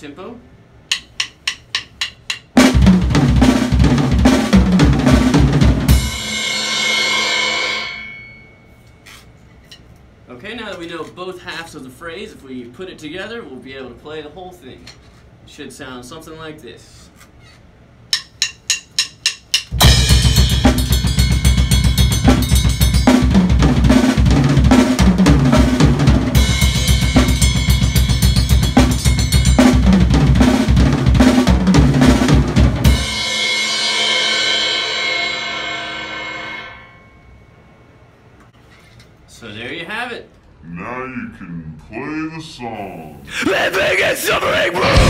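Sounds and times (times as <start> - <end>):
drumsticks clicking: 0.9 - 2.6, 18.1 - 19.8
fast drum kit playing: 0.9 - 7.9, 18.1 - 36.7, 43.5 - 45.0
cymbals ringing: 5.9 - 9.8, 18.1 - 23.9, 26.3 - 30.3, 32.8 - 38.3.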